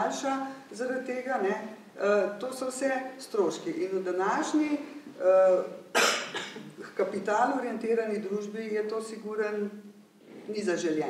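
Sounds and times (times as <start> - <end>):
person coughing: 6.0 - 6.8.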